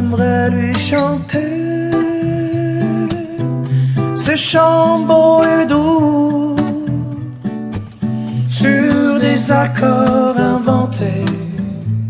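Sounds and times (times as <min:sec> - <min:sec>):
man singing: 0:00.0 - 0:07.5, 0:08.3 - 0:12.0
acoustic guitars playing: 0:00.0 - 0:12.0.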